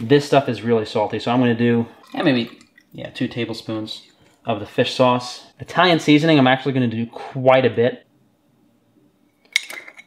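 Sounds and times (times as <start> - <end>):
glass jar clinking on metal: 9.4 - 10.0.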